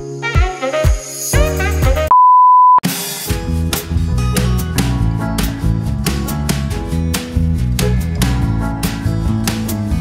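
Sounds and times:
loud electronic beep: 2.1 - 2.8
background music with drums: 2.8 - 10.0.

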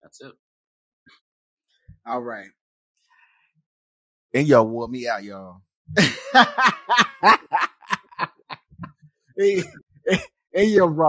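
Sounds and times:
man laughing: 6.0 - 10.8.

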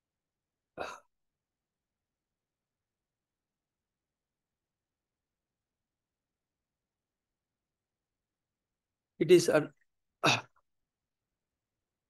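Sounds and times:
person's throat sound: 0.8 - 1.1, 10.2 - 10.6.

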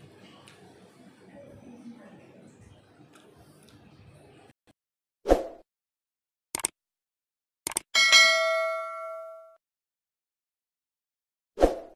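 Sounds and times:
quick clicks: 6.6 - 6.8, 7.6 - 7.9
bright bell ding: 8.0 - 9.6.

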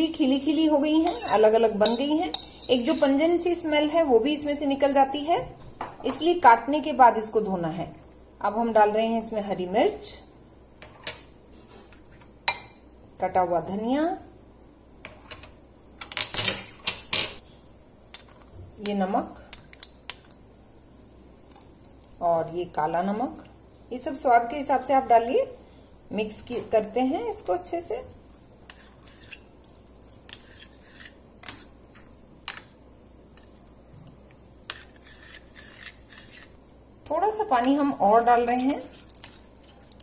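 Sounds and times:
spoon stirring in a bowl: 0.6 - 3.6, 27.6 - 40.0
utensils clinking against dishes: 1.0 - 3.3, 15.2 - 17.4.

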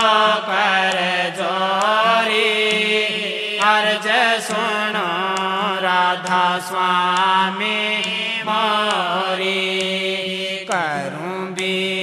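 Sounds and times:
devotional chant singing: 0.0 - 12.0.

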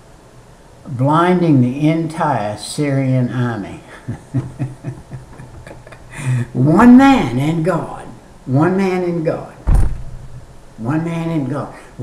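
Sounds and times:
man chuckling softly: 3.9 - 6.6.

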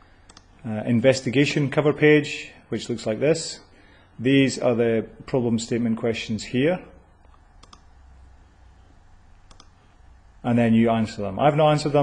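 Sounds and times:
faint low hum: 0.0 - 12.0
computer mouse clicks: 0.2 - 0.5, 7.2 - 7.9, 9.4 - 9.8.

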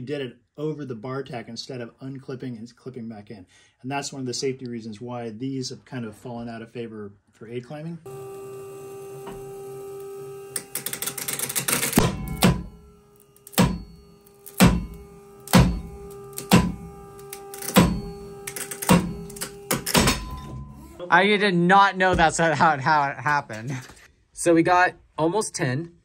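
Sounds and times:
steady machine hum: 8.1 - 21.1.

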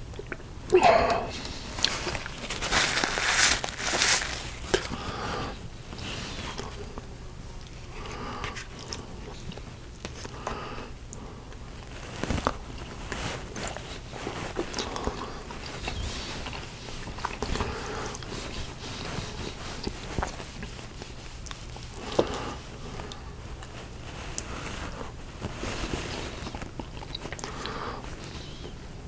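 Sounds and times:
chewing and mouth sounds: 0.0 - 5.2, 5.9 - 28.7.

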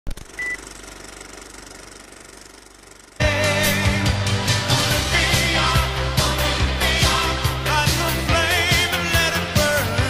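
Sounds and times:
film projector clattering: 0.1 - 3.3
short high beep: 0.4 - 0.6.

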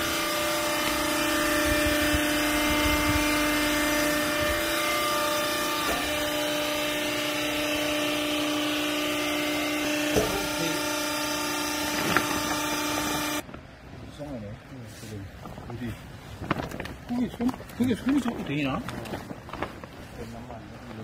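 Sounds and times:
hydraulic pump motor humming: 0.0 - 13.4.

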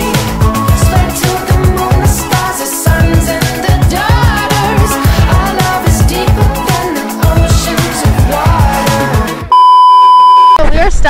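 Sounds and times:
music: 0.0 - 9.5
censor bleep tone: 9.5 - 10.6
woman speaking: 10.6 - 11.0.

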